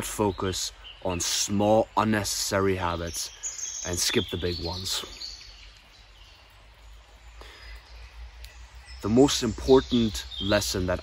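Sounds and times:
distant birds chirping: 0.0s - 11.0s.

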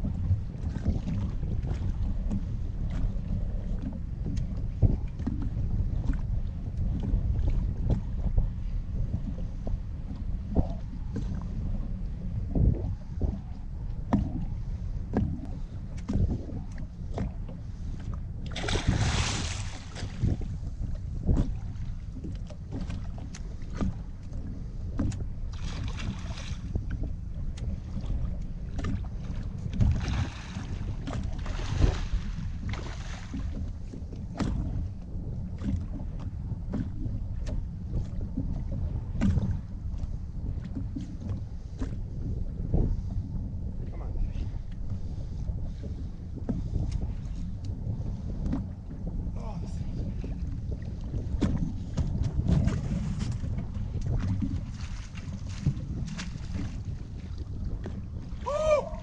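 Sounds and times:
water lapping against boat hull: 0.0s - 59.0s
wind rumbling on microphone: 0.0s - 59.0s
water splashing: 18.5s - 20.4s, 29.8s - 33.6s.

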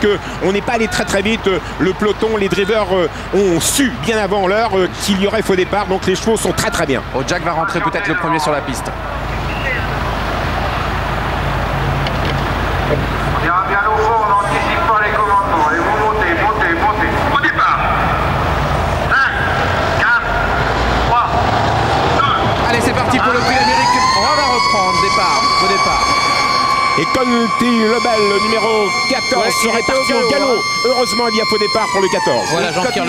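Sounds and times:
large crowd noise: 0.0s - 33.0s
siren wailing: 22.2s - 33.0s.

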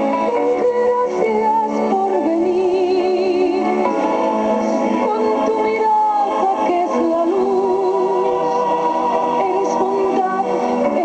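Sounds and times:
music with singing: 0.0s - 11.0s.

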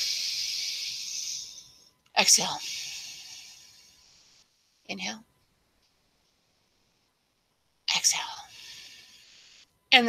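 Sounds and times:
woman breathing in deeply: 0.0s - 1.9s, 2.6s - 4.4s, 8.5s - 9.7s.

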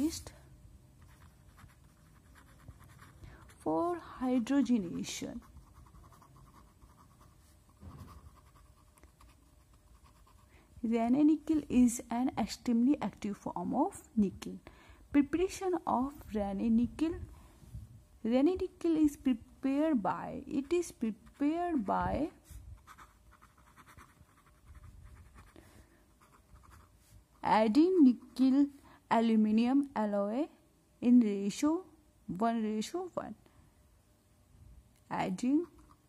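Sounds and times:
pen scratching on paper: 1.0s - 3.8s, 5.3s - 10.5s, 22.8s - 25.5s, 26.1s - 27.0s.

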